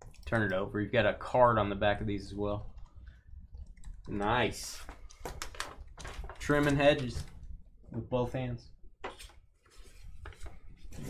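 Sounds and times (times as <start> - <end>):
packaging rustling: 4.8 - 7.5.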